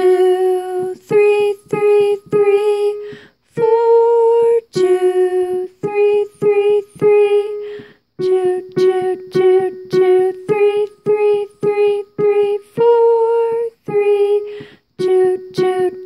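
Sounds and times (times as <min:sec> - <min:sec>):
person singing numbers: 0:00.0 - 0:16.0
digital piano melody: 0:04.8 - 0:13.2, 0:13.9 - 0:16.0.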